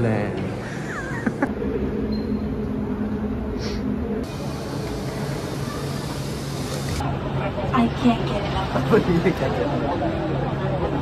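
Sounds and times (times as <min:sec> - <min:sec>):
shuttle train hiss and hum: 0:02.7 - 0:07.1.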